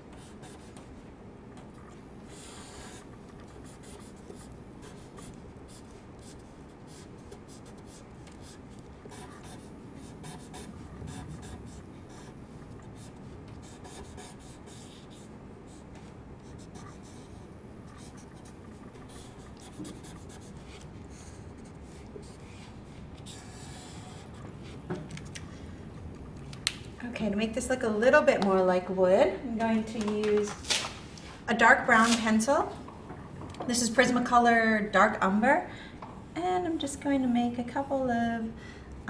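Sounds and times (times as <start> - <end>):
marker scratching on paper: 0.1 - 0.9, 2.3 - 24.8.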